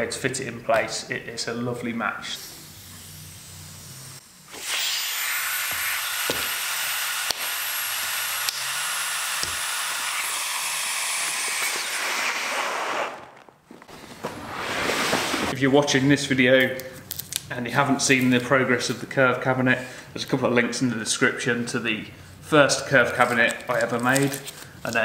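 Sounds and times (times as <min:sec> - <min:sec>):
air hissing into vacuum bag: 0:04.5 - 0:06.1, 0:10.0 - 0:15.6.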